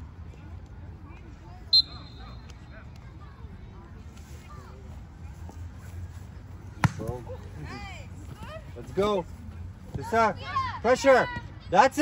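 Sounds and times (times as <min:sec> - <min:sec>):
faint distant voices: 0:00.0 - 0:12.0
soccer ball kick thump: 0:06.8 - 0:07.2.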